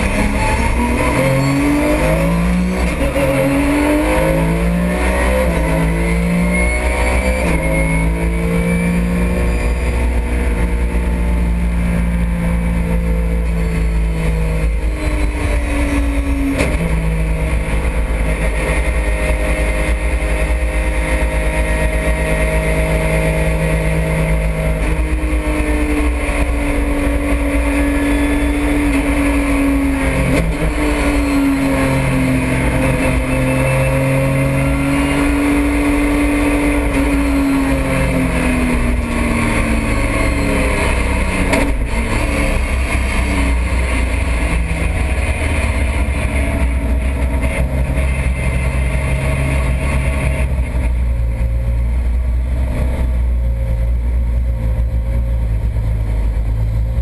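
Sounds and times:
race car engine: 0.0s - 57.0s.

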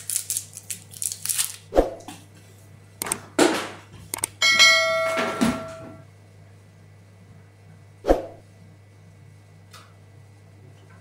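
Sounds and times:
bright bell ding: 4.4s - 6.0s.

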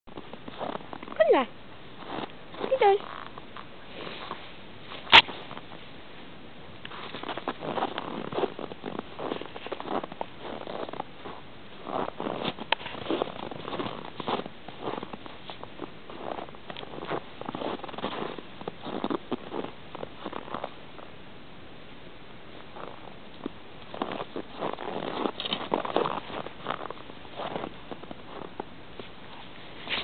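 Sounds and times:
footsteps crunching in snow: 0.1s - 1.2s, 1.9s - 5.8s, 6.8s - 21.1s, 22.6s - 30.0s.

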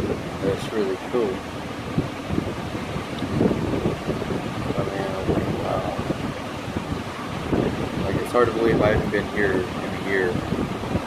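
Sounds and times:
ocean surf washing: 0.0s - 11.0s
wind buffeting microphone: 0.0s - 11.0s.

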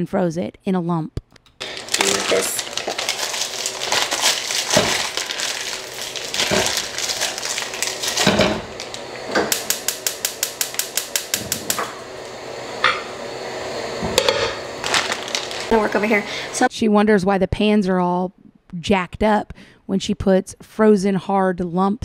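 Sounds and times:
plastic wrapping crinkling: 1.6s - 11.4s, 14.5s - 16.5s
frozen meat knocking in pan: 1.6s - 12.0s
gas burner igniter clicking: 8.6s - 13.4s.

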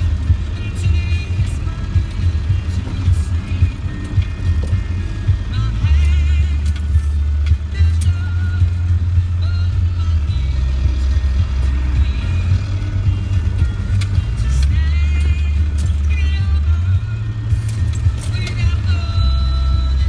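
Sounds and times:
vehicle engine low drone: 0.0s - 20.0s.

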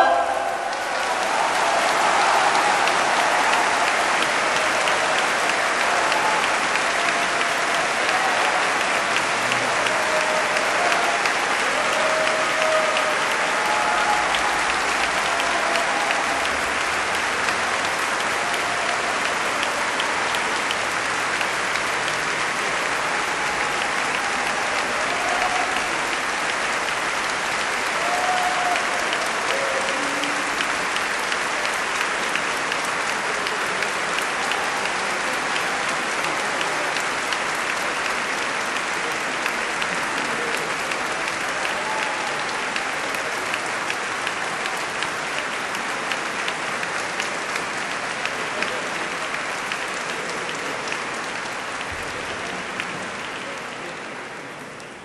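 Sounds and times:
audience applauding: 0.0s - 55.0s.

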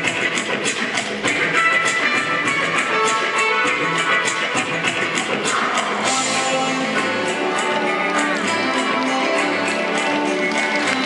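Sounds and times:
music with guitar and beat: 0.0s - 11.0s.

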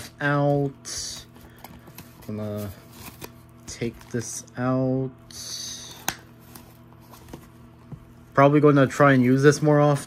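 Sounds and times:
mini fridge humming: 0.0s - 10.0s.

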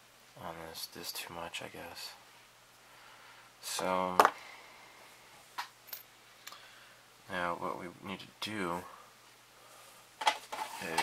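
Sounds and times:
man talking: 0.4s - 2.2s, 3.6s - 4.3s, 7.3s - 9.0s, 10.8s - 11.0s.

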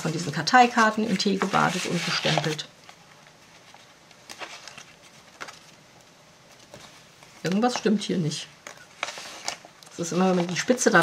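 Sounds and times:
paper pages rustling: 0.0s - 11.0s.

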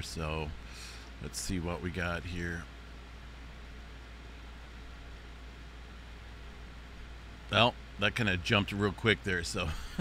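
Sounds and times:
faint low hum: 0.0s - 10.0s
low hiss: 0.0s - 10.0s.

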